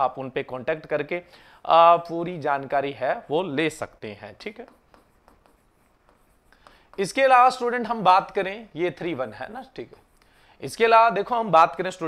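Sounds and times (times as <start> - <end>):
marker pen writing on board: 4.4 - 11.4.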